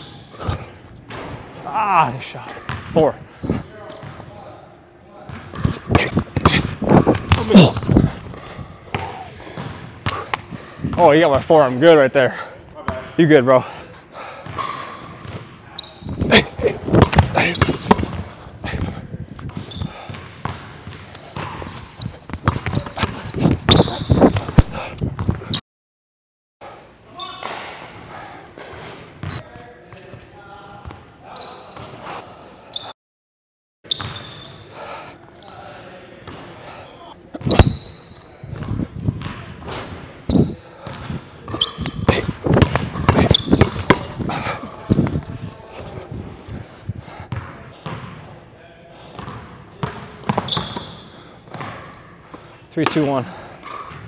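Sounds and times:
sneaker squeaks: 0.0 - 4.7, 5.3 - 10.9, 14.4 - 25.6, 27.1 - 28.0, 28.7 - 30.1, 30.8 - 33.0, 33.8 - 45.6, 47.3 - 48.1, 49.2 - 52.1
basketball bouncing on hardwood: 42.1 - 44.2.

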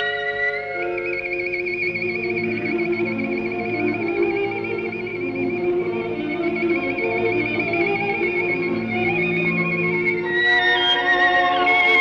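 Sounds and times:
soft orchestral accompaniment: 0.0 - 12.0
violin high trill: 0.0 - 12.0.

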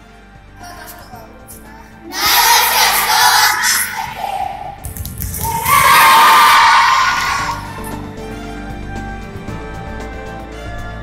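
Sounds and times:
background music: 0.0 - 11.0
children shouting together: 2.1 - 4.8, 5.5 - 7.9.

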